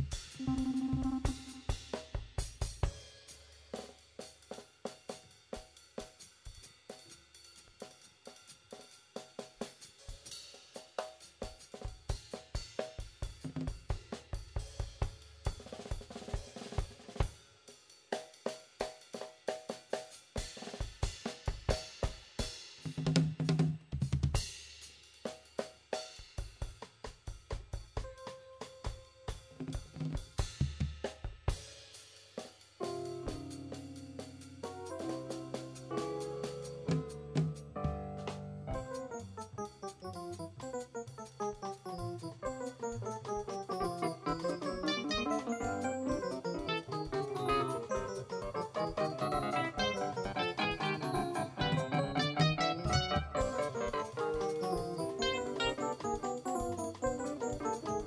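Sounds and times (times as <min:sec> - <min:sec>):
drum kit cymbal and snare strokes: 0:00.0 - 0:38.7
jazz combo playing: 0:00.4 - 0:01.8, 0:32.8 - 0:58.0.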